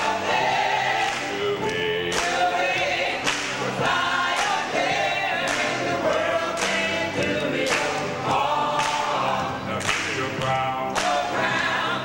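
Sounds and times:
gospel choir singing: 0:00.0 - 0:12.0
hand claps: 0:01.0 - 0:04.8, 0:05.4 - 0:11.4.

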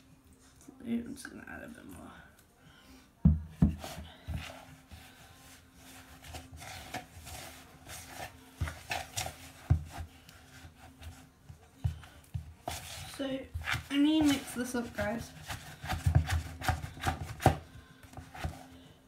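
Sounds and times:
spoon stirring sticky dough: 0:03.8 - 0:18.9.

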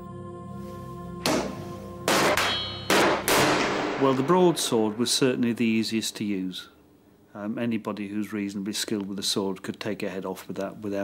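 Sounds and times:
background music with held notes: 0:00.0 - 0:05.0
sword striking meat target: 0:01.2 - 0:04.1.

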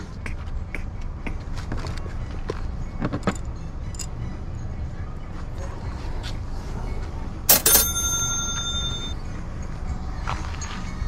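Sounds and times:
bell-like chime: 0:07.5 - 0:09.2.

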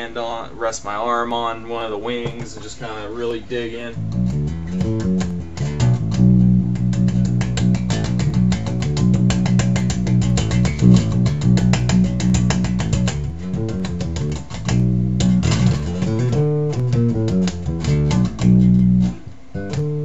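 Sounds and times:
electric bass played with fingers: 0:03.9 - 0:20.0.

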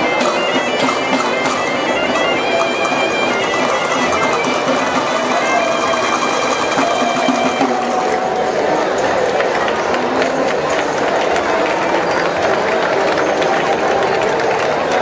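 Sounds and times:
bagpipes playing a tune: 0:00.0 - 0:09.8
crowd chatter: 0:00.0 - 0:15.0.

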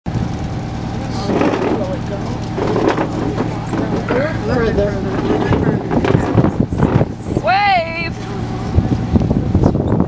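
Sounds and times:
boat engine humming: 0:00.1 - 0:10.0
people talking: 0:01.1 - 0:08.9.

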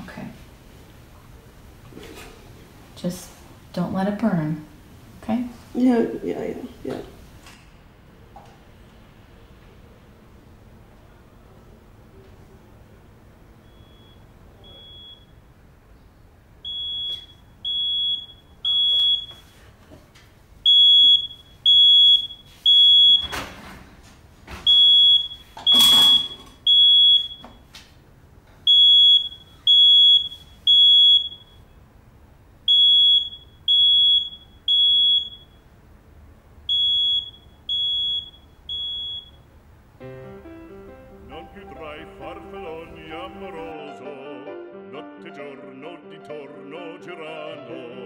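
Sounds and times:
smoke alarm beeping: 0:13.6 - 0:15.4, 0:16.6 - 0:19.7, 0:20.6 - 0:23.4, 0:24.6 - 0:27.7, 0:28.6 - 0:31.8, 0:32.7 - 0:35.7, 0:36.7 - 0:39.6.

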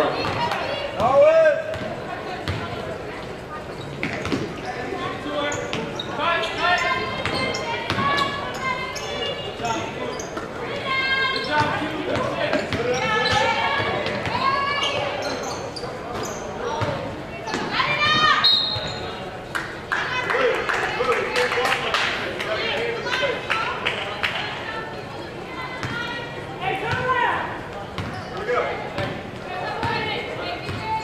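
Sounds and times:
voices calling out: 0:00.0 - 0:31.0.

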